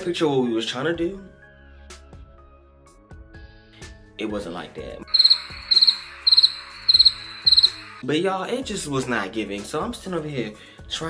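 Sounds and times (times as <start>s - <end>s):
cricket chirps: 5.1s - 8.0s.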